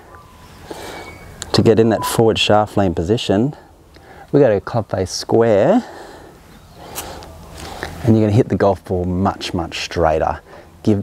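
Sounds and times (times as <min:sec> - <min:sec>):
faint breath: 0:00.5 - 0:01.4, 0:03.6 - 0:04.3, 0:05.8 - 0:08.0, 0:10.4 - 0:10.8.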